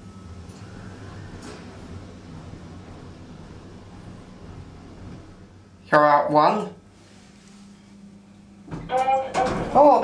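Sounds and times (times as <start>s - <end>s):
lift machinery hum: 0.0s - 6.1s.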